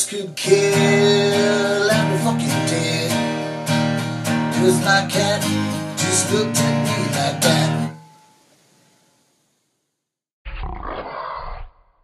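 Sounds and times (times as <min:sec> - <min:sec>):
acoustic guitar chord: 0:00.0 - 0:08.4.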